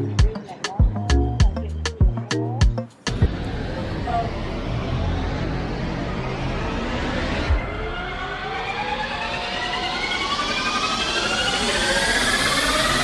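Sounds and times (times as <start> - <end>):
rising suspense tones: 3.1 - 13.0.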